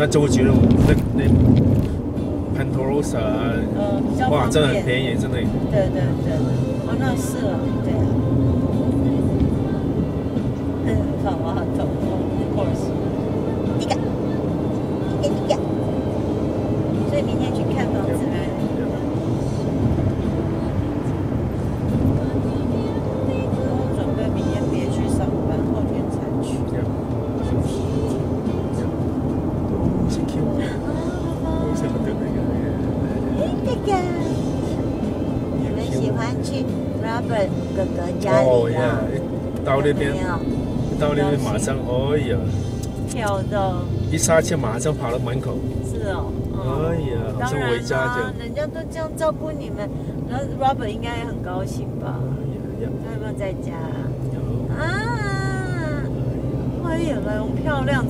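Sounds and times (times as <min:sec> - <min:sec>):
car road and engine noise: 0:00.0 - 0:58.0
music: 0:00.0 - 0:58.0
voices: 0:02.6 - 0:15.8, 0:17.0 - 0:19.4, 0:21.8 - 0:29.2, 0:29.9 - 0:58.0.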